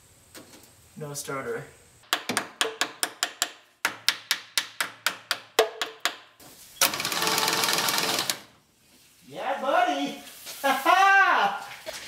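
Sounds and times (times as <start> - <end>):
starter motor cranking engine: 6.8 - 8.5.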